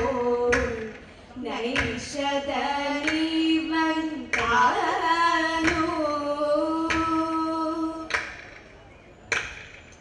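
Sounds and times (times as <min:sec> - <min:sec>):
hands clapping in unison: 0:08.1 - 0:08.5, 0:09.3 - 0:09.7.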